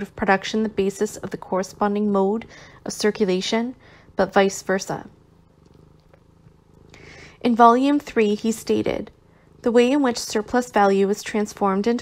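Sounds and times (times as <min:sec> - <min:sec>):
faint low pulsing rumble: 0:00.0 - 0:12.0
faint ticks: 0:05.5 - 0:07.0.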